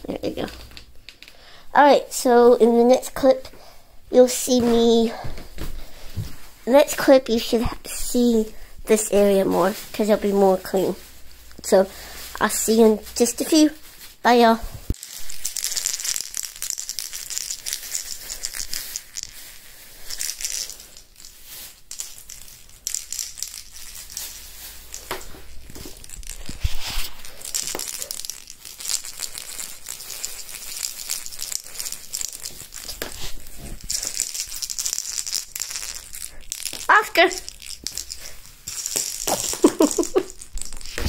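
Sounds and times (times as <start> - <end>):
crinkling and rustling: 0.0 - 1.4, 4.4 - 41.0.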